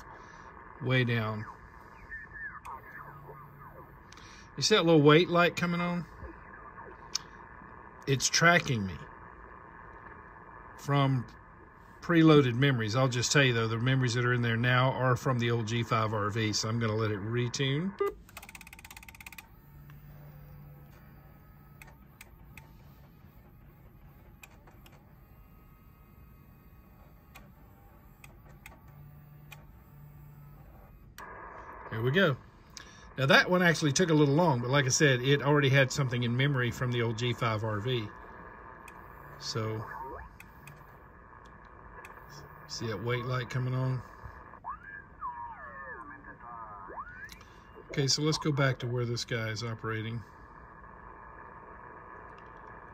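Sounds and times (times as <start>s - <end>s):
radio tone sliding in pitch: 0.0s - 18.0s, 28.9s - 52.2s
garbled radio signals: 0.0s - 18.3s, 28.5s - 52.9s
faint motor whir: 0.0s - 52.9s
relays clicking: 18.2s - 20.0s.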